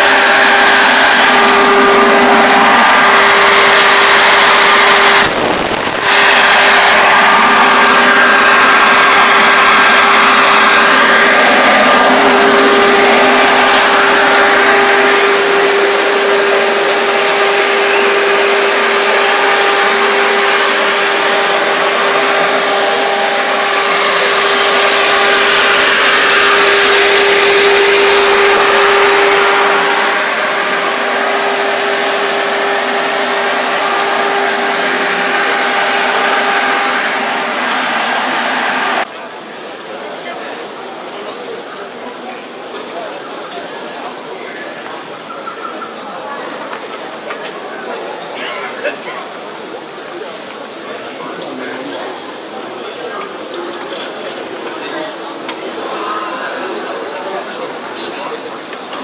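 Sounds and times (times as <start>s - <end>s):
machinery drone with whine: 0.0s - 40.2s, 41.2s - 59.0s.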